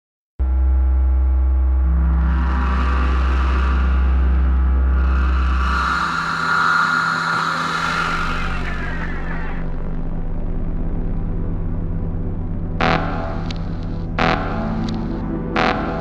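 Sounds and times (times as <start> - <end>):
deep bass drone: 0.4 - 16.0
sustained synth tones: 0.4 - 16.0
swells of noise: 1.8 - 15.2.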